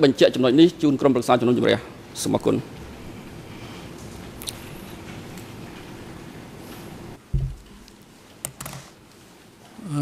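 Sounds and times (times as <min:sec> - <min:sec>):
low thump: 0:07.3 - 0:07.7.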